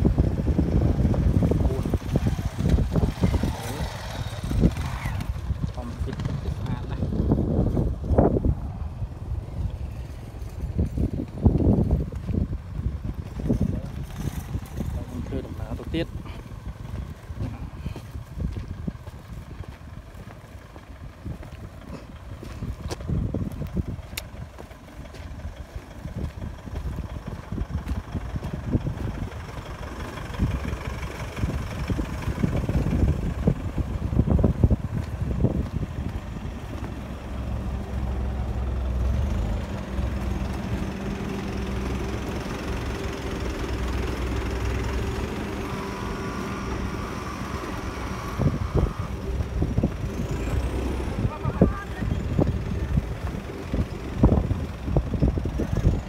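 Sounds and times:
minibus engine idling: 0.0 - 56.0
wind buffeting microphone: 0.0 - 56.0.

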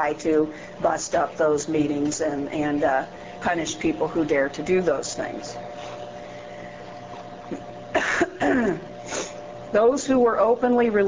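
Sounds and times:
woman clearing her throat: 7.5 - 8.9.

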